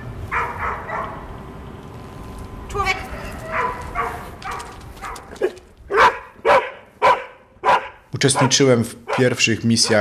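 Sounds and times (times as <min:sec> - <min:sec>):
dog barking: 0:00.3 - 0:01.2, 0:03.2 - 0:10.0.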